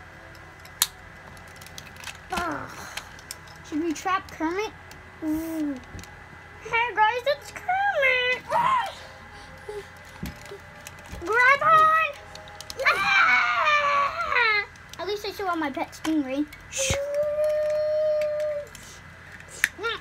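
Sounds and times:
child whimpering and crying: 2.3s - 3.0s, 5.2s - 5.9s, 8.4s - 10.7s, 12.8s - 14.7s, 16.7s - 19.0s.

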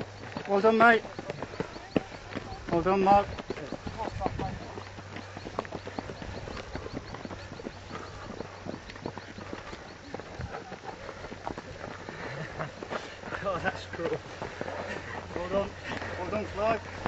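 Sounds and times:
footsteps on dirt path: 0.0s - 17.0s.

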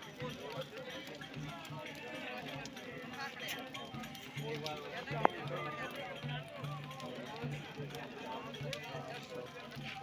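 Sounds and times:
voices calling and singing: 0.0s - 10.0s.

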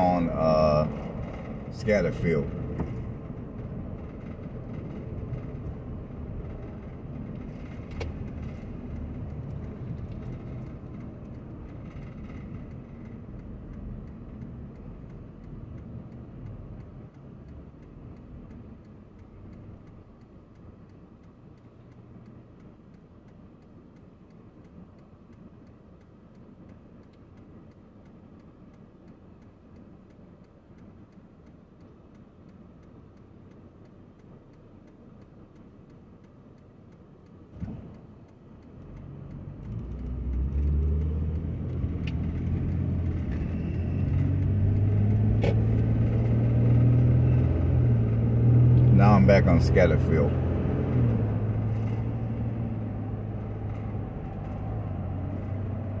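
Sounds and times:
car engine idling: 0.0s - 46.9s
car engine and road noise: 0.0s - 56.0s.

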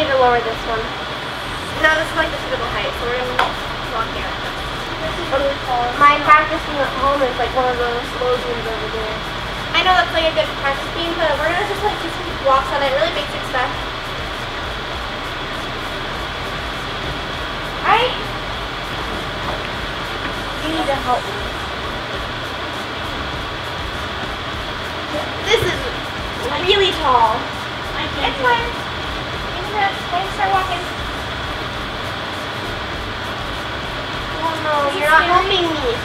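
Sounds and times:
faint high whine: 0.0s - 36.0s
room noise: 0.0s - 36.0s.

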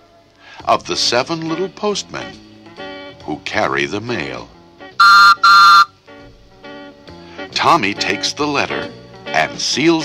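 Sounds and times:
whistle toots: 5.0s - 5.9s.

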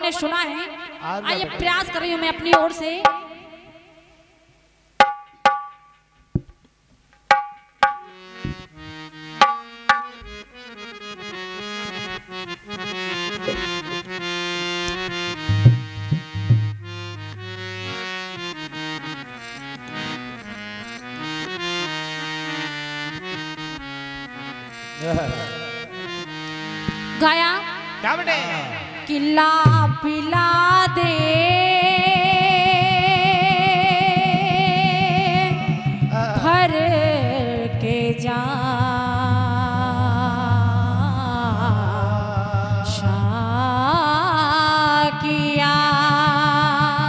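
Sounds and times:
harmonium melody: 0.0s - 4.1s, 5.0s - 6.6s, 7.2s - 47.0s
low drum thud: 7.3s - 8.7s, 15.5s - 16.8s
person singing: 13.4s - 14.1s, 25.0s - 25.8s, 27.2s - 47.0s.

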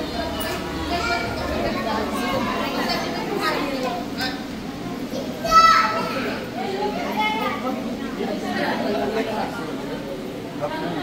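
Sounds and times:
chatter of adults and children: 0.0s - 11.0s.

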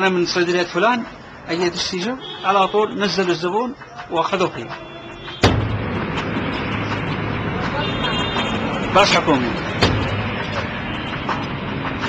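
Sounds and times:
road noise: 0.0s - 12.0s
vehicle engines: 0.0s - 12.0s.

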